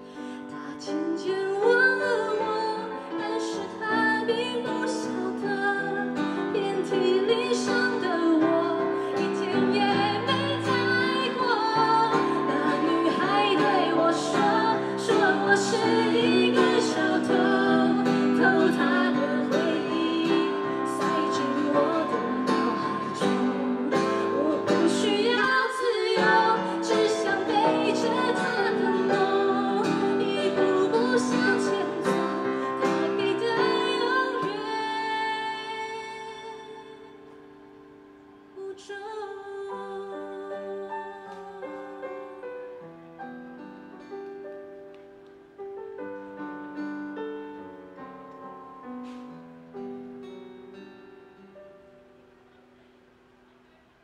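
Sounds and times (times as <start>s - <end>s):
woman singing pop song: 0.0s - 37.3s, 38.6s - 42.4s
keyboard: 0.0s - 38.6s
guitar: 0.0s - 54.0s.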